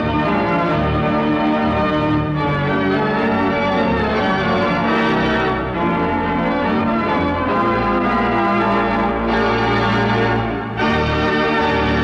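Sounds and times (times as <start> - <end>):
pipe organ playing chords: 0.0 - 12.0.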